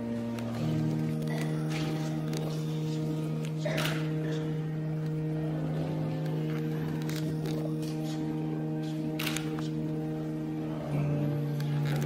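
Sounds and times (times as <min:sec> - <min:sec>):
church organ chords: 0:00.0 - 0:12.0.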